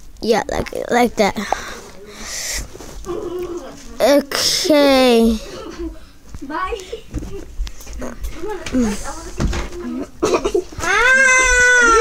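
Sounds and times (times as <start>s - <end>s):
breathy hiss: 1.3s - 2.8s, 4.3s - 6.2s.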